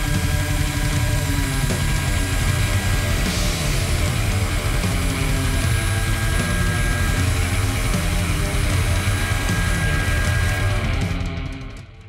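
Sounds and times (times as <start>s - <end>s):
electric router cutting wood: 0.0s - 11.7s
background music: 0.0s - 12.0s.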